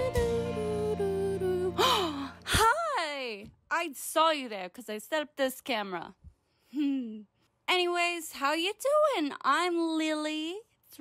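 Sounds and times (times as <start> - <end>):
background music: 0.0 - 2.6
woman gasping: 1.7 - 2.8.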